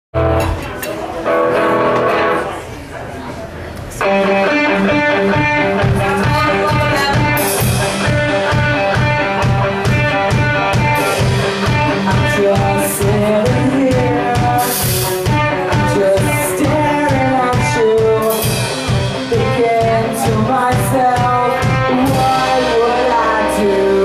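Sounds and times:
rock band playing: 0.2 - 2.6, 4.0 - 24.0.

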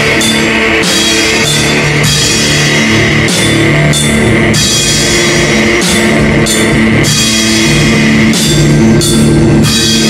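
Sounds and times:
cymbal crashes: 0.0 - 10.0
distorted electric guitar chords: 0.0 - 10.0
drum kit: 0.0 - 10.0.

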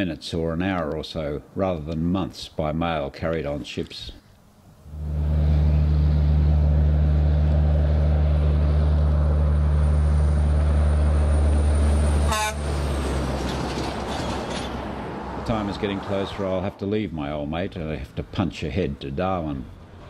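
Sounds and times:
tyre and road noise: 3.3 - 20.0
diesel engine droning: 4.7 - 18.3
faint high whine: 4.8 - 12.3
truck horn toot: 12.1 - 13.0.

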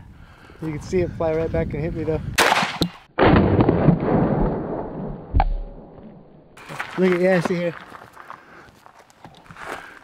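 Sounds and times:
shotgun blast: 2.4 - 5.8.

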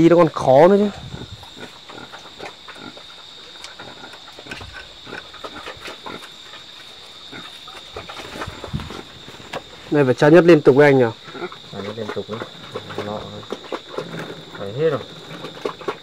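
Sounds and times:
high insect drone: 0.0 - 16.0.

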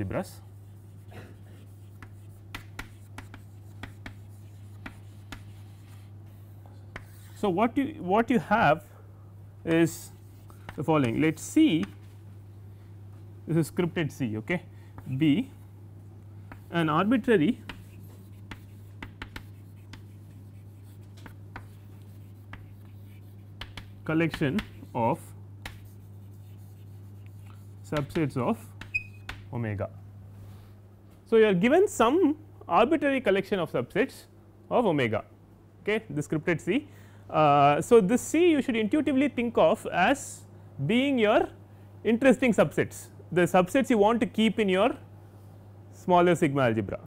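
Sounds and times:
steady low hum: 0.0 - 47.0
chalk tapping and scraping on board: 0.6 - 7.4, 9.7 - 12.0, 16.4 - 25.0, 25.6 - 29.5.

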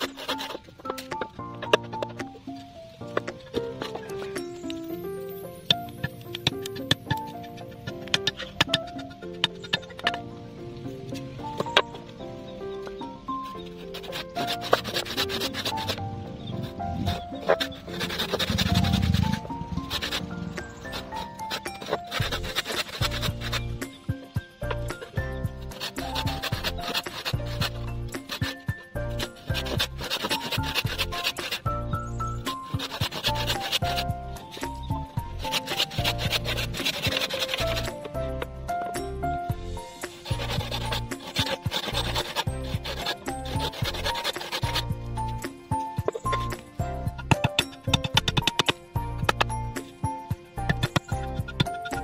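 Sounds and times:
handsaw cutting wood: 0.0 - 0.7, 13.6 - 24.0, 24.6 - 38.4, 39.0 - 52.0
background music: 0.0 - 52.0.

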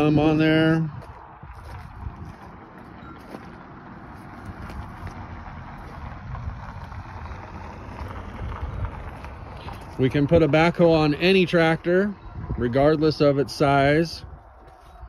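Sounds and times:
wind on microphone: 0.0 - 3.0, 4.4 - 15.0.

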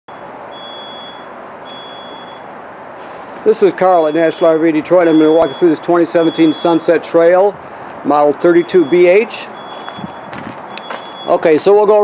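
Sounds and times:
high-pitched electronic beeping: 8.6 - 11.5.

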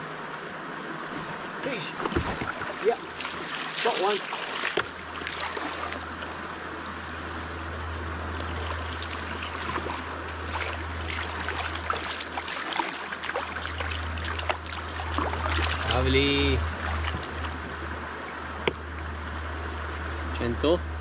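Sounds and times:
river water rushing: 0.0 - 21.0
small ticks and splashes: 2.0 - 6.6, 8.4 - 17.7.

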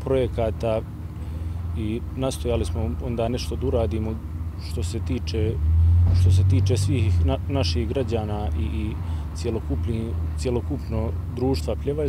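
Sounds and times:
engine rumble: 0.0 - 12.0
man speaking: 1.8 - 5.6, 6.2 - 12.0.

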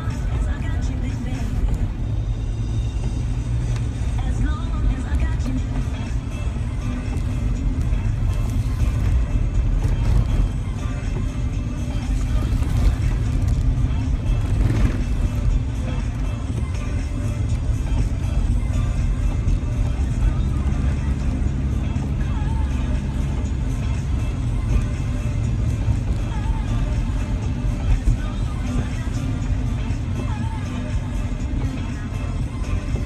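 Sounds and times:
car engine and tyres rumbling: 0.0 - 33.0
music from car radio: 0.0 - 33.0.

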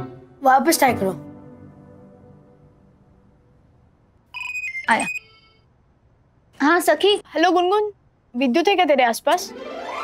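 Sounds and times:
mobile phone ringtone: 4.3 - 5.7.

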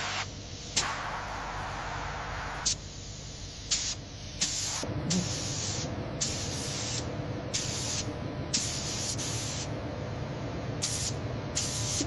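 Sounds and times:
spray gun hissing bursts: 0.0 - 2.9, 3.6 - 9.7, 10.8 - 12.0
steady low hum: 0.0 - 12.0.

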